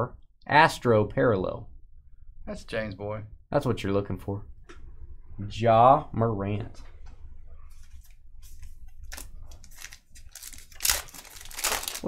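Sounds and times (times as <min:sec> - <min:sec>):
foil wrapper crinkling and tearing: 0:09.0 - 0:12.0.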